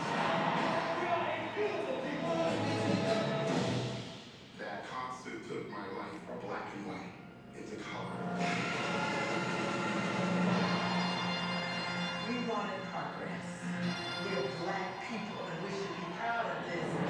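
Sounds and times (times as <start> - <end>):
music over loudspeakers: 0.0 - 4.5, 8.2 - 17.0
voices speaking: 12.2 - 17.0.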